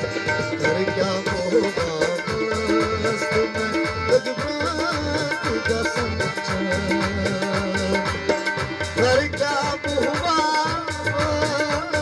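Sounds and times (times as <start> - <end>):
harmonium: 0.0 - 12.0
tabla playing steady rhythm: 0.0 - 12.0.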